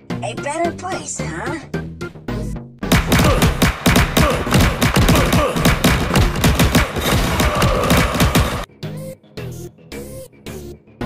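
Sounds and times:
cartoon thumps bangs and crashes: 2.8s - 8.7s.

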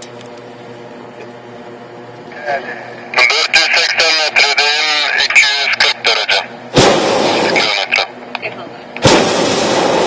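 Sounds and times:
person talking close to microphone: 2.3s - 6.5s, 7.4s - 9.0s.

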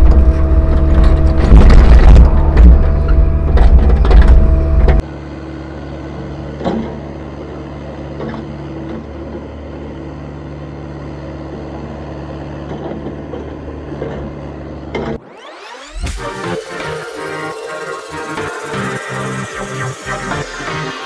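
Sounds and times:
excavator diesel engine running: 0.0s - 21.0s.

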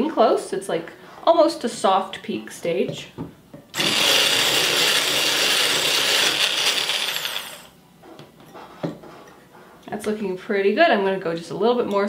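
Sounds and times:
immersion blender whipping cream: 3.8s - 7.8s.

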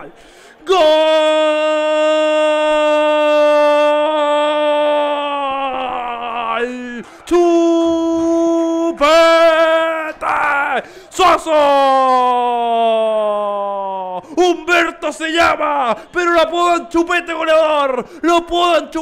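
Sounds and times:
male commentator screaming: 0.0s - 19.0s.

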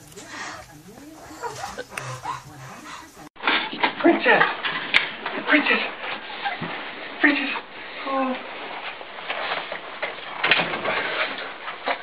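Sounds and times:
high whimpering cries: 0.0s - 3.3s
faint low voices: 0.0s - 3.4s.

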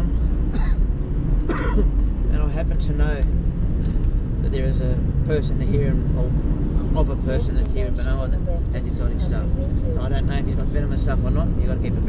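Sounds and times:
car engine rumble: 0.0s - 12.0s
road noise: 0.0s - 12.0s
man clearing throat: 0.5s - 1.9s.

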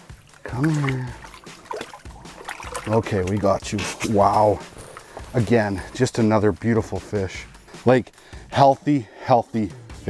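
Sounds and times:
water splashing and trickling: 0.0s - 7.8s.

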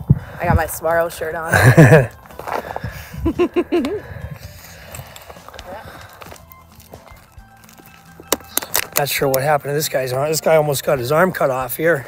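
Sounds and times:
people laughing: 1.5s - 2.1s, 3.2s - 4.2s
footsteps on sandy ground: 1.8s - 9.1s.

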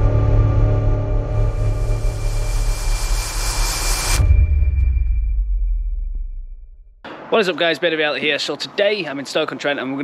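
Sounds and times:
rushing whoosh: 0.0s - 5.6s
deep bass drone: 0.0s - 7.1s.

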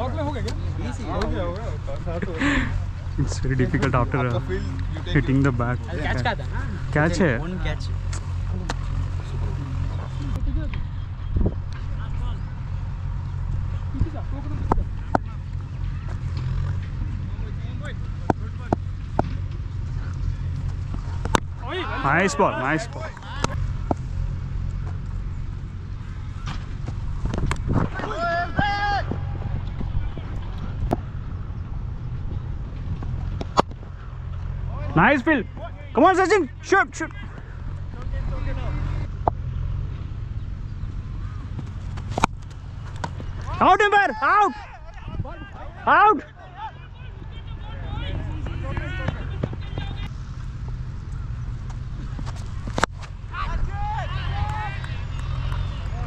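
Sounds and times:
players calling out: 0.0s - 11.2s, 11.8s - 26.7s, 27.8s - 31.2s, 33.1s - 56.0s
wind rumble on microphone: 10.0s - 12.6s, 26.7s - 33.9s, 44.9s - 45.7s
distant person shouting: 27.9s - 29.4s, 43.4s - 50.1s, 53.3s - 56.0s.

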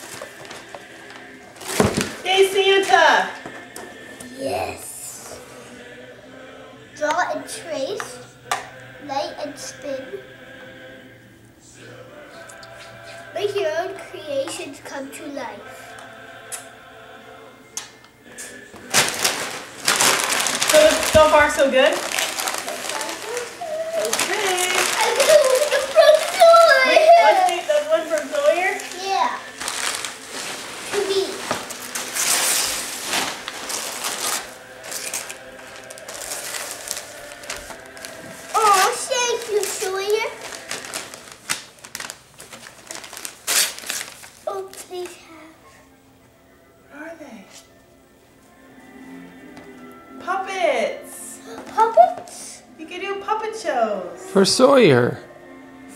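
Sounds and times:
wrapping paper tearing and crumpling: 0.0s - 2.7s, 18.8s - 45.2s.

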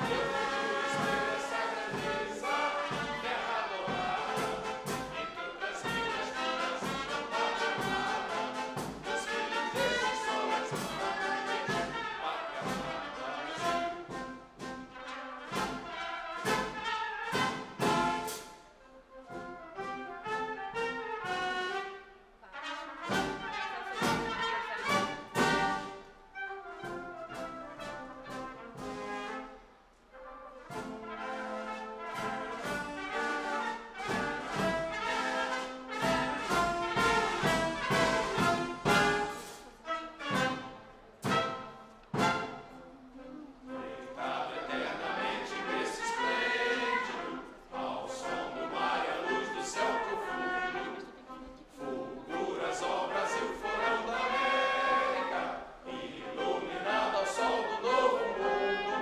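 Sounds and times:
choir singing: 0.0s - 18.6s, 22.6s - 26.2s, 30.7s - 59.0s
orchestra with brass: 0.0s - 59.0s.

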